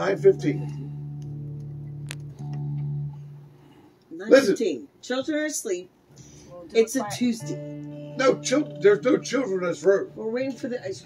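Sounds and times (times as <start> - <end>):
electric guitar notes: 0.0 - 4.5, 6.1 - 11.0.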